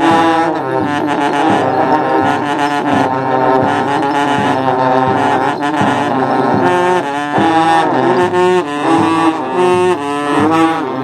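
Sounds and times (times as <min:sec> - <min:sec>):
bass drum beats: 0:00.0 - 0:11.0
long trumpets droning: 0:00.0 - 0:11.0.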